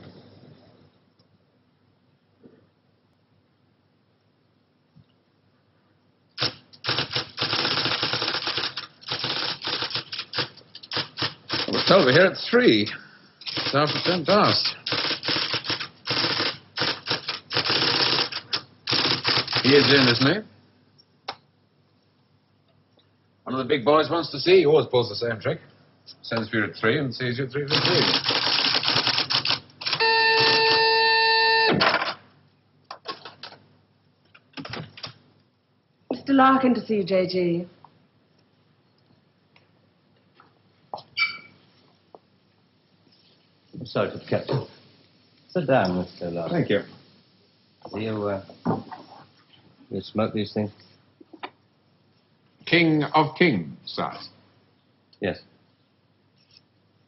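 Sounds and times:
typewriter clattering: 0:06.4 - 0:12.2, 0:13.4 - 0:20.3, 0:27.7 - 0:30.0, 0:34.5 - 0:35.2
steady buzzing tone: 0:27.7 - 0:31.8.

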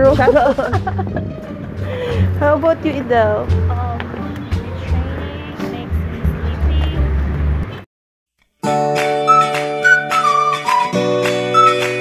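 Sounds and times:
street noise rumble: 0:00.0 - 0:07.9.

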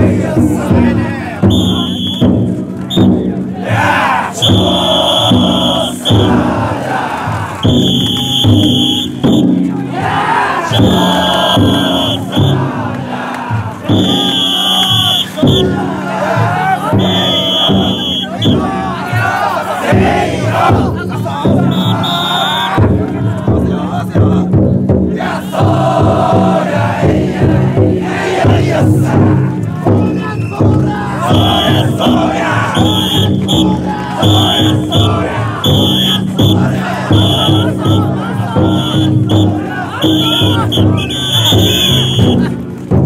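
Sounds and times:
big drum beating: 0:00.0 - 0:43.0
crowd shouting and chanting: 0:00.0 - 0:43.0
shrill whistle blasts: 0:01.5 - 0:02.3, 0:04.4 - 0:06.4, 0:07.6 - 0:09.5, 0:10.7 - 0:12.7, 0:13.9 - 0:15.7, 0:17.0 - 0:18.6, 0:21.7 - 0:22.8, 0:30.0 - 0:30.7, 0:31.3 - 0:42.5.

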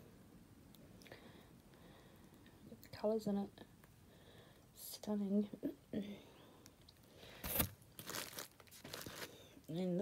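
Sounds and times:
packing material crunch: 0:07.4 - 0:09.4
packing material crinkling: 0:07.4 - 0:09.5.

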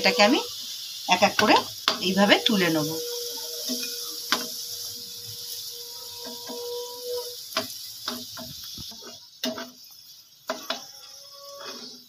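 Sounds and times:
food sizzling in hot oil: 0:00.0 - 0:12.0
spatula scraping pan: 0:01.2 - 0:12.0.

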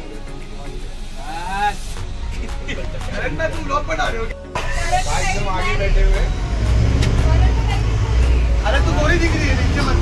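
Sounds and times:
passengers' voices: 0:00.0 - 0:06.2
bus engine and road rumble: 0:00.0 - 0:10.0.

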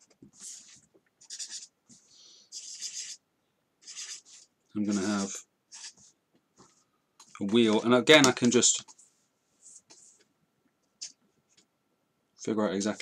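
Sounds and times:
pen scratching on paper: 0:00.0 - 0:03.2, 0:03.8 - 0:06.1.

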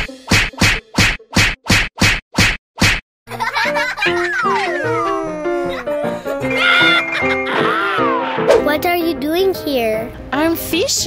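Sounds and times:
music: 0:00.0 - 0:01.4, 0:03.3 - 0:11.0
sharp slap sound effects: 0:00.0 - 0:03.0.

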